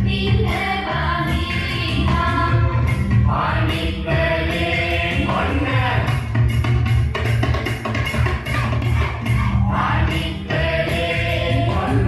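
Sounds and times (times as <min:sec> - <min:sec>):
steady drum beat: 0:02.9 - 0:12.0.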